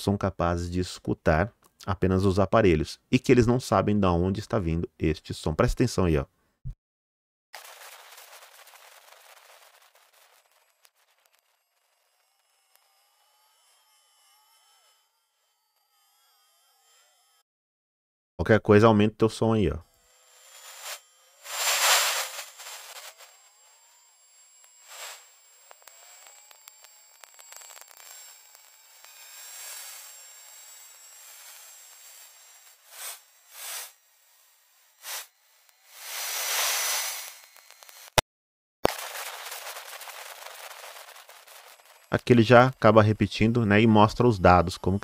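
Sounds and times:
hiss swelling in bursts: 20.5 - 23.4, 24.8 - 25.3, 32.8 - 34.0, 35.0 - 37.4.

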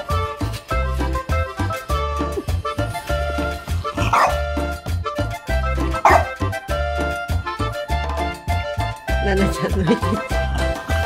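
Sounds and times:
background music with steady beat: 0.0 - 11.0
dog barking: 4.0 - 4.4, 6.0 - 6.4.

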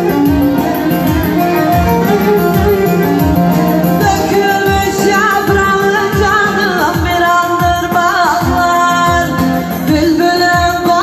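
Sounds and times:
melody instrument: 0.0 - 5.4
folk music drum beat: 0.0 - 11.0
woman singing with vibrato: 0.0 - 11.0.

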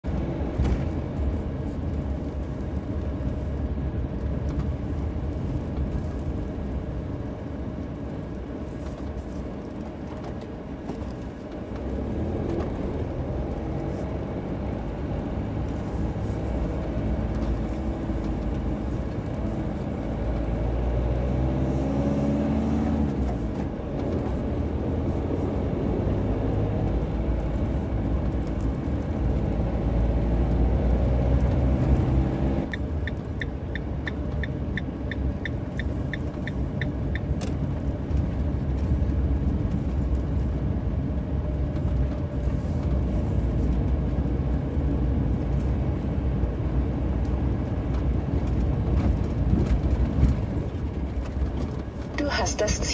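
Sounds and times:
van engine and road rumble: 0.0 - 52.9.

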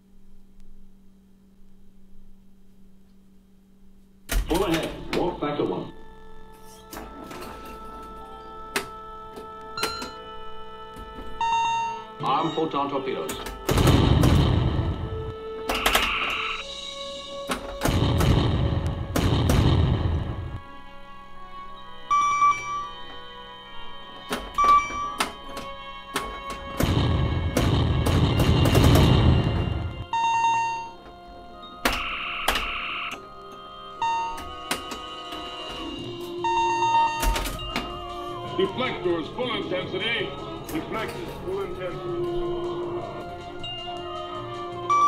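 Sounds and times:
game background music: 4.3 - 45.0
electronic bleeps and tones: 11.4 - 12.7, 15.7 - 16.6, 31.9 - 33.2
noisy explosion effects: 13.7 - 15.3, 17.8 - 20.6, 26.8 - 30.1.

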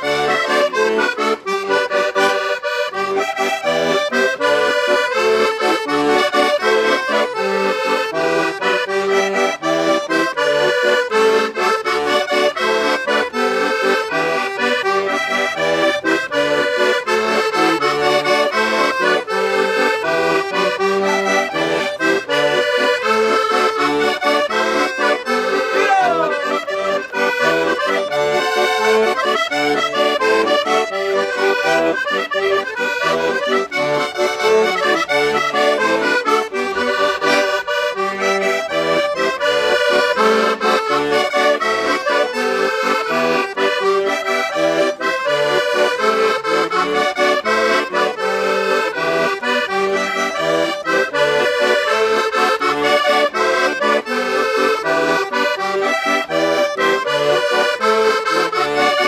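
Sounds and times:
accordions playing dance tune: 0.0 - 59.0.

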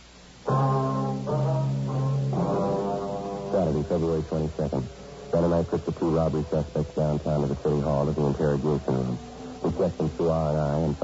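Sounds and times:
low brass chords: 0.5 - 11.0
man narrating: 3.6 - 11.0.

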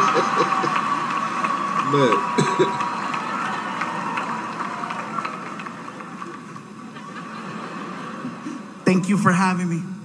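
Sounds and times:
audience laughing: 0.0 - 1.0, 6.4 - 8.8
audience applauding: 0.0 - 8.3.

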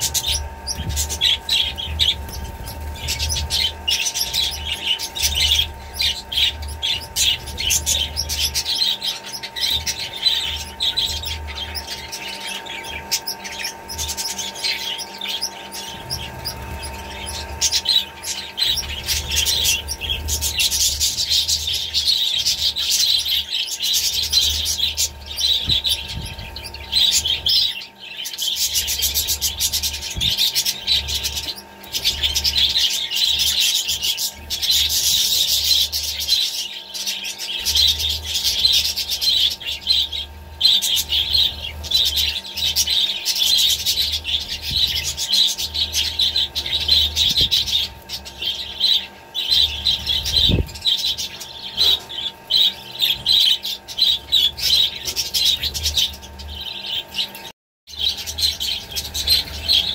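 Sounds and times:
budgerigars chattering: 0.0 - 59.9.

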